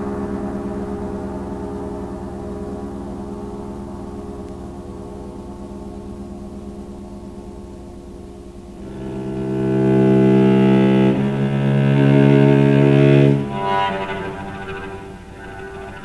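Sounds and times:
sustained low chord: 0.0 - 16.0
low bowed strings: 8.7 - 16.0.

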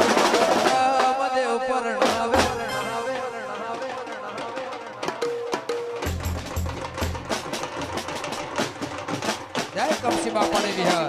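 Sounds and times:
fast folk drumming: 0.0 - 2.7, 3.5 - 11.0
deep bass drum beat: 9.8 - 11.0.

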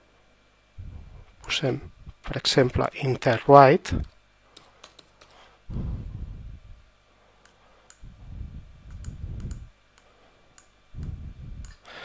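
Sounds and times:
low rumble: 0.8 - 2.2, 5.7 - 6.9, 8.0 - 9.8, 10.9 - 11.8
computer mouse clicks: 4.6 - 5.3, 8.9 - 12.0.

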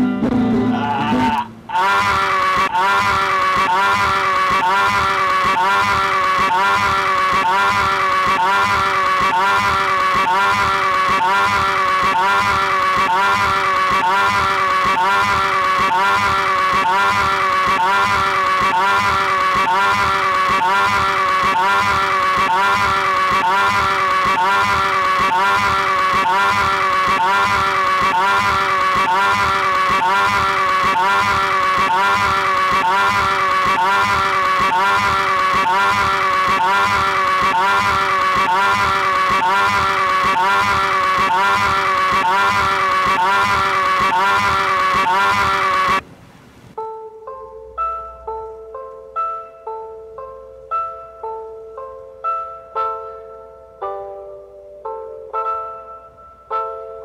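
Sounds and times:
droning chord with pulse: 1.4 - 46.0.

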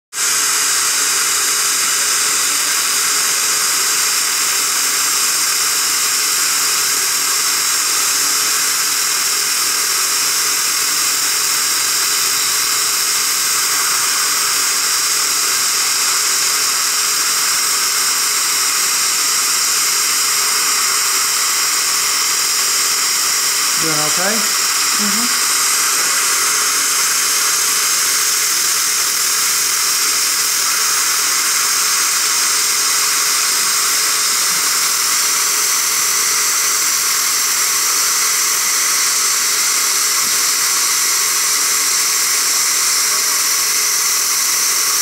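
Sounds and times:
dental suction: 0.2 - 45.0.

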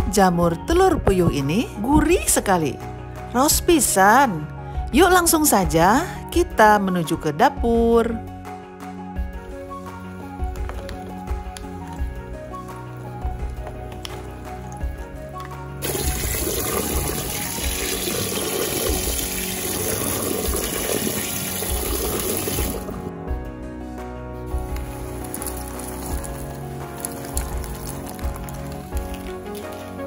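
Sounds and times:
background music: 0.0 - 30.0
tap water running into strainer: 15.8 - 23.0.

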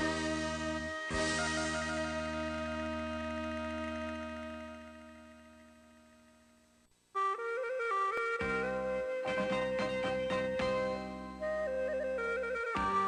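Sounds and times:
wind instrument melody: 0.0 - 5.1, 7.2 - 13.0.

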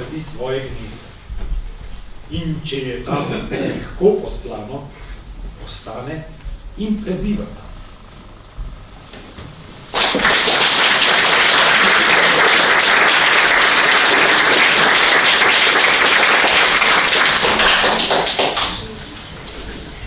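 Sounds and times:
audience applauding: 9.9 - 19.0.

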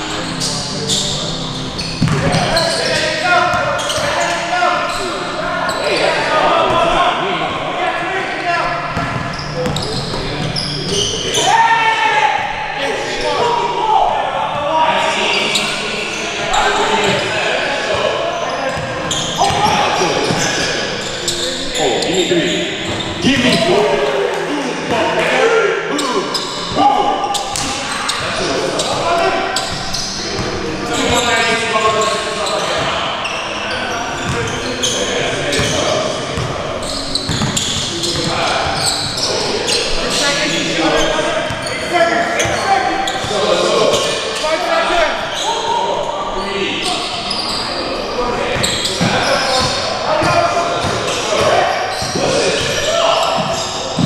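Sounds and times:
players calling out: 0.0 - 54.0.

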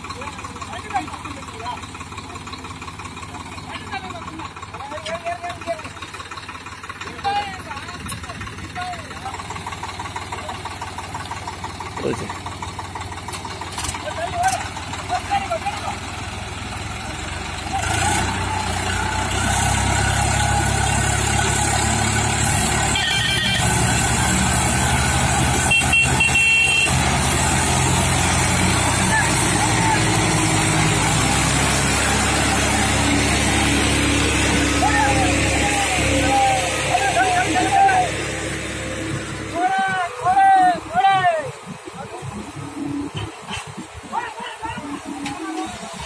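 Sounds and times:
diesel tractor engines under load: 0.0 - 46.0.

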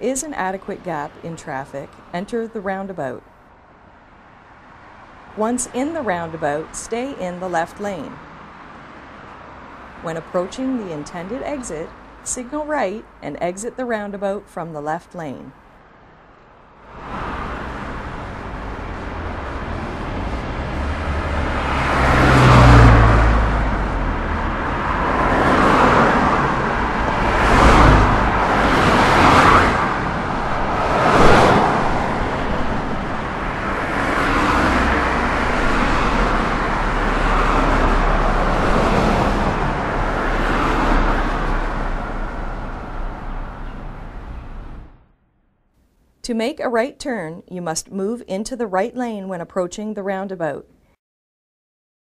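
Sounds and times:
cars passing: 0.0 - 45.1
low rumble of traffic: 0.0 - 50.9.

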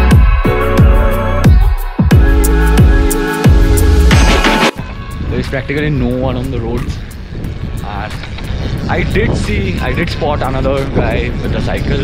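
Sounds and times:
wind buffeting microphone: 4.8 - 12.0
man's voice: 5.3 - 7.1, 8.8 - 12.0.

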